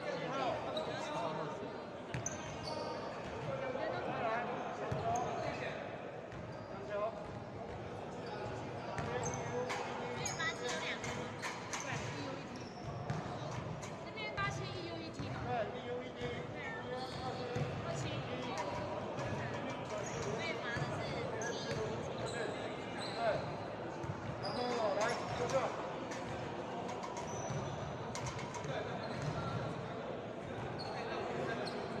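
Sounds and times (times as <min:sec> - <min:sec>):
voices echoing in gym: 0:00.0 - 0:32.0.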